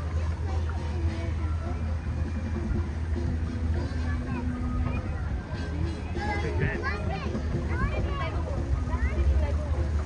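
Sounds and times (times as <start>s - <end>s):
boat motor humming: 0.0s - 10.0s
faint voices: 0.0s - 10.0s.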